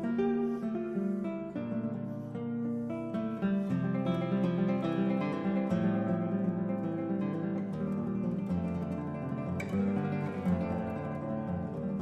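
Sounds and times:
classical guitar fingerstyle: 0.0s - 12.0s.

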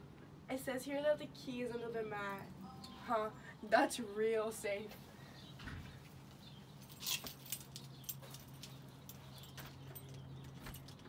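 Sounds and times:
keys jingling in lock: 6.8s - 11.0s.

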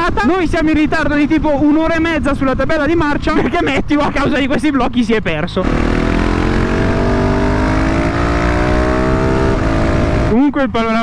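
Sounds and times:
motorcycle engine accelerating: 5.5s - 10.4s.

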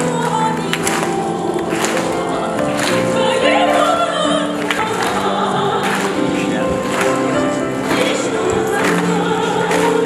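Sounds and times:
choir singing held notes: 0.2s - 10.0s.

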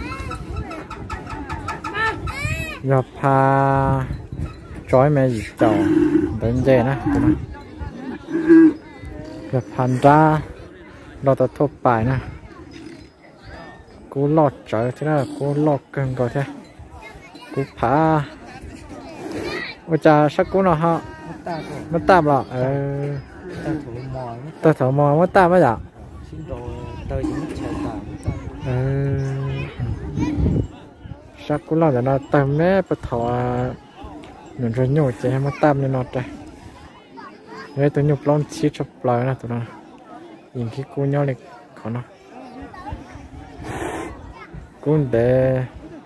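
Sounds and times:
people talking: 0.0s - 46.0s.

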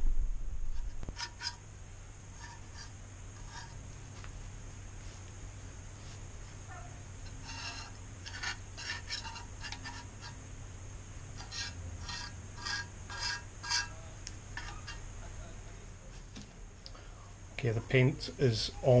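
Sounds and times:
scraper blade scraping paint off metal: 1.0s - 1.6s, 2.3s - 3.9s, 7.2s - 10.4s, 11.3s - 15.1s.

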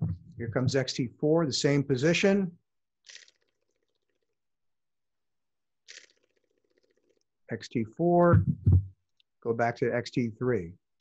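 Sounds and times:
camera shutter clicking rapidly: 3.1s - 3.6s, 5.9s - 6.4s.

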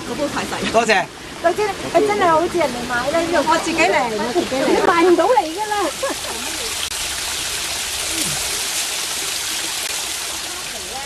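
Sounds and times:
small waterfall splashing: 0.0s - 11.0s.

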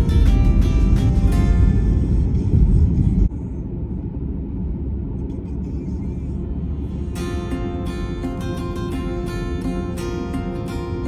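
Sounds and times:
car driving on highway from inside: 0.0s - 11.0s.

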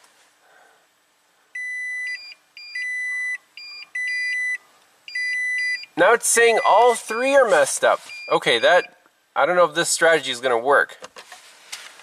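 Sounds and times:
dashboard warning chime: 1.6s - 9.0s.

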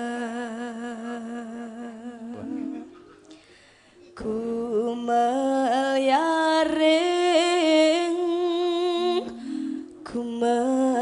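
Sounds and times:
woman singing with vibrato: 0.0s - 3.0s, 4.1s - 11.0s.

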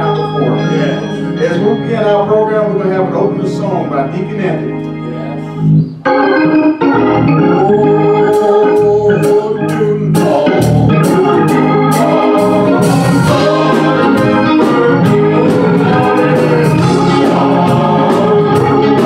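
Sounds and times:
organ playing gospel chords: 0.0s - 19.0s
steady drum beat: 10.2s - 19.0s.

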